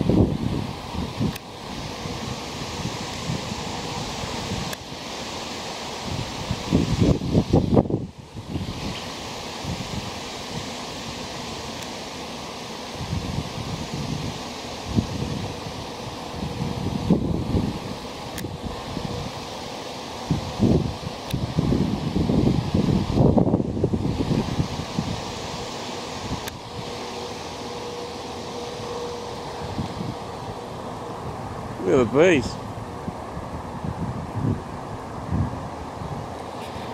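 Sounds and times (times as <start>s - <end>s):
wind noise: 0.0s - 12.0s, 12.8s - 36.9s
bee swarm humming: 0.0s - 36.9s
bees buzzing past: 1.4s - 33.8s.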